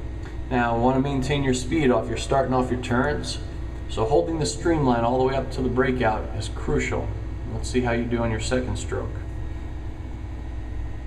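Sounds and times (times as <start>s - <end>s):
steady low hum with hiss: 0.0s - 11.0s.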